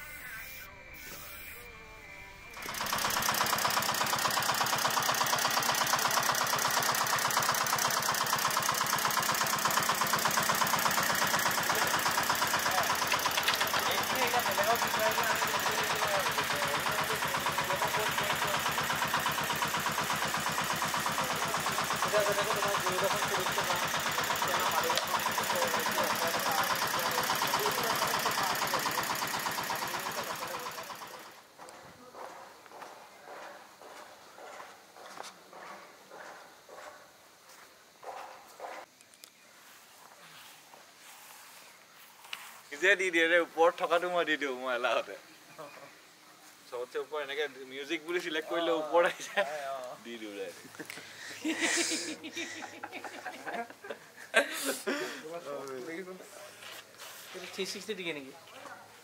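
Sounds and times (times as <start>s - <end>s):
fast-pulsing mechanical buzz: 0.0s - 31.5s.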